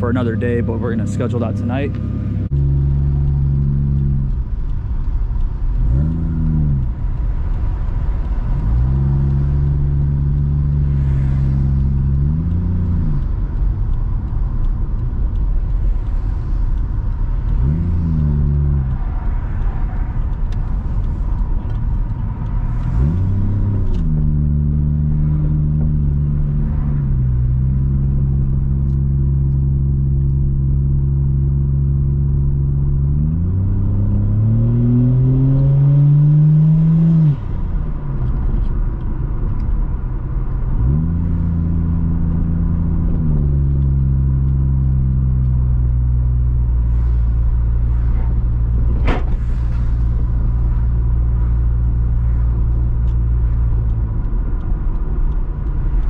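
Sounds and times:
car engine droning in cabin: 0.0s - 56.0s.

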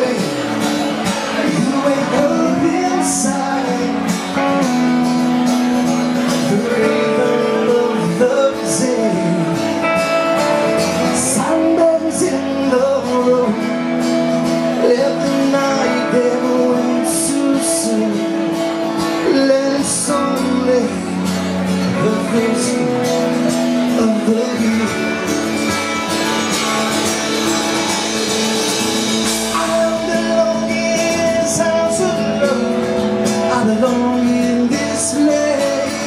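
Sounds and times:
man singing: 0.0s - 27.4s, 29.0s - 36.0s
live band music: 0.0s - 36.0s.

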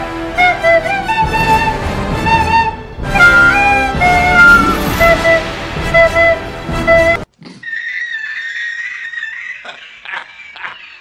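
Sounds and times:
film score music: 0.0s - 7.3s
man laughing hard: 8.9s - 11.0s.

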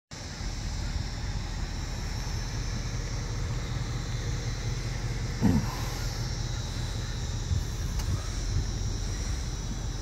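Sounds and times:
car engine idling: 0.1s - 10.0s.

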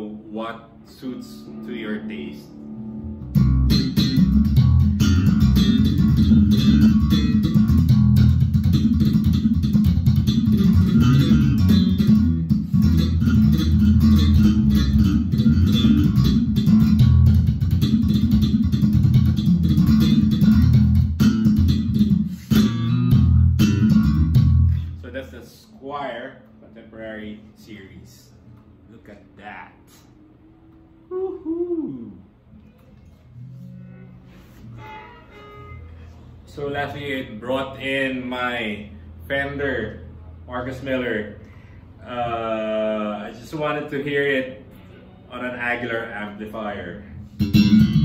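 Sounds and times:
electric bass guitar fingerstyle: 1.6s - 25.0s, 47.0s - 48.0s.

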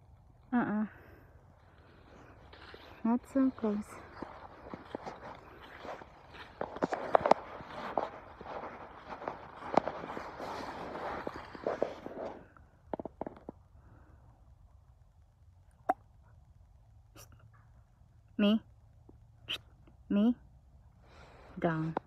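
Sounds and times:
footsteps through grass and leaves: 1.6s - 12.5s.

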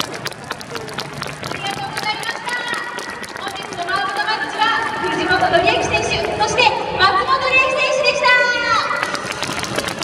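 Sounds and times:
crowd hand claps: 0.0s - 5.2s, 8.9s - 10.0s.

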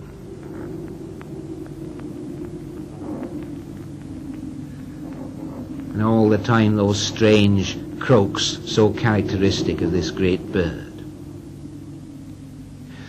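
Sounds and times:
low hum and hiss: 0.0s - 13.0s
ravens croaking: 0.0s - 13.0s.

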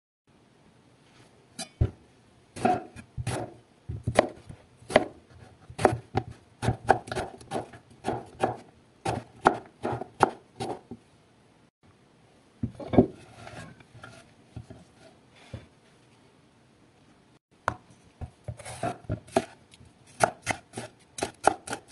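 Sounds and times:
knife chopping on wooden board: 2.6s - 10.8s, 18.5s - 19.6s, 20.2s - 21.9s.

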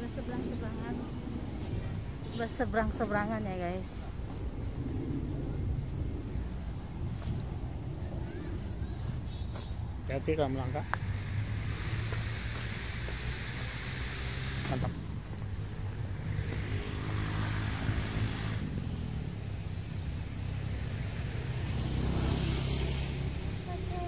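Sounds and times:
hiss of passing vehicles: 0.0s - 24.0s
low hum of traffic: 0.0s - 24.0s.

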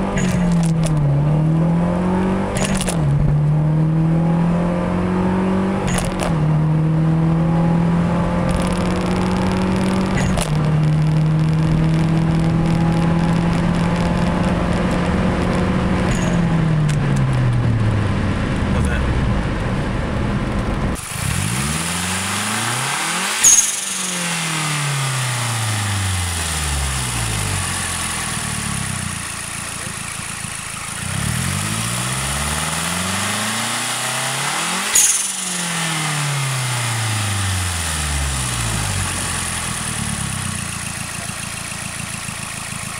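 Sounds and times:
car engine revving: 0.0s - 42.9s.

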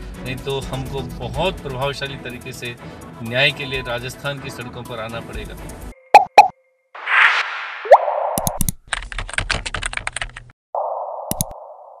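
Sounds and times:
short rising tone: 6.4s - 8.5s
swoosh: 7.0s - 8.5s
fast typing-like clicks: 8.4s - 10.5s.

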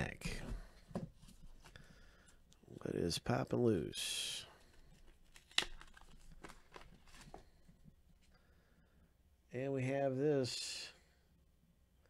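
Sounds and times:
plastic sleeve crinkling: 4.6s - 7.6s.

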